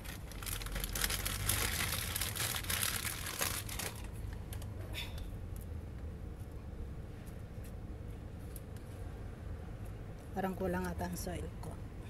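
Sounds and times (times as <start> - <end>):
plastic bag crinkling: 0.0 - 4.2.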